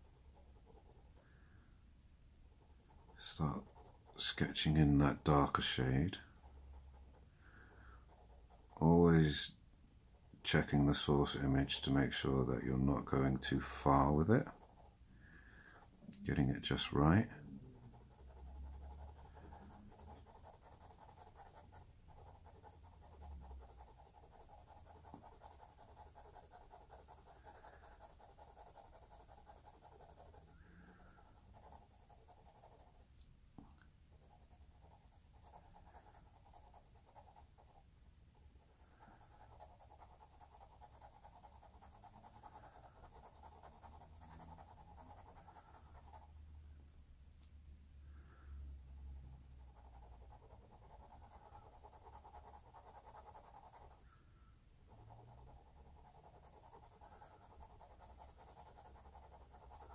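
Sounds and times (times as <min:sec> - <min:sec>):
pencil scratching on paper: 0:00.0 - 0:01.2, 0:02.6 - 0:09.5, 0:10.4 - 0:15.0, 0:15.6 - 0:33.1, 0:34.1 - 0:37.8, 0:38.4 - 0:46.5, 0:48.2 - 0:54.2, 0:54.9 - 0:59.9.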